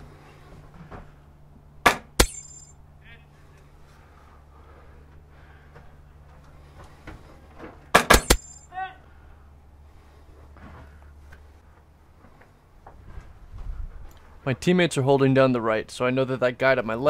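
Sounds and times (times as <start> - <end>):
airsoft rifle shots: 1.8 - 2.5, 7.9 - 8.6.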